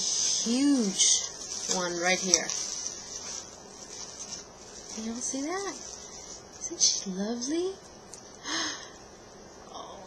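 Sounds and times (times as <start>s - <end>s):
insect chirring: 0.0s - 7.2s.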